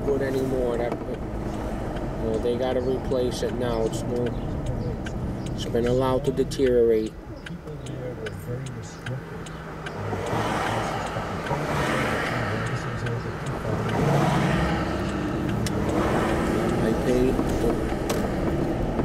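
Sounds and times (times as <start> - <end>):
car engine from inside cabin: 0.0 - 19.0
tyre road noise: 0.0 - 19.0.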